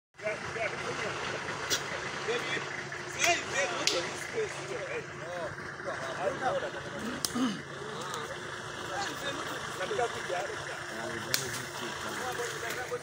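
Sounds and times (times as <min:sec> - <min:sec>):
overlapping voices talking: 0:00.2 - 0:13.0.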